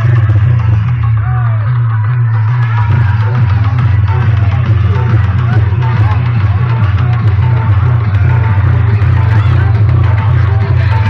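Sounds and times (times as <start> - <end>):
loud bass-heavy music: 0.0 - 11.0.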